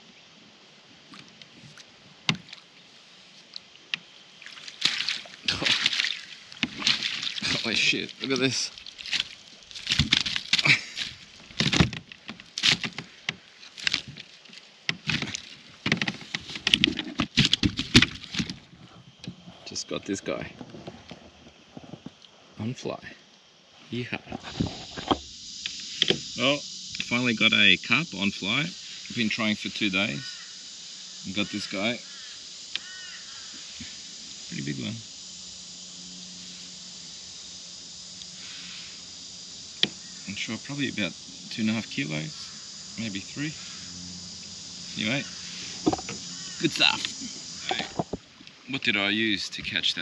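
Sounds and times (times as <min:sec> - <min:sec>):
outdoor background hiss: 0:00.0 - 0:50.0
fish flapping and slapping: 0:04.5 - 0:18.7
crow cawing: 0:30.2 - 0:30.6, 0:31.4 - 0:33.8, 0:42.3 - 0:42.8, 0:43.6 - 0:44.0, 0:46.2 - 0:46.8.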